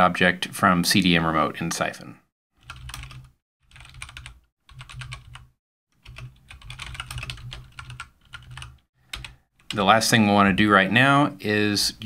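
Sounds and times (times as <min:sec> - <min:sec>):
typing on computer keyboard: 0:02.6 - 0:09.8.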